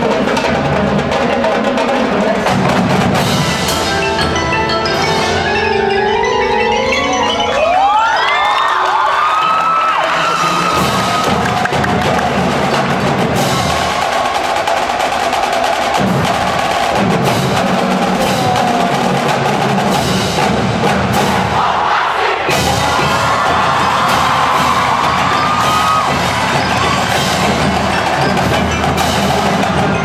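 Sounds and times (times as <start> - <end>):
mallet percussion: 0.0 - 14.1, 15.7 - 21.3, 22.5 - 30.0
drumline strokes: 0.0 - 30.0
marching band playing: 0.0 - 30.0.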